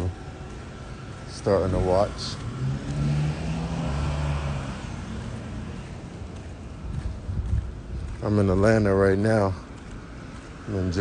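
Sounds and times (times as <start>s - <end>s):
outdoor street noise: 0.0s - 11.0s.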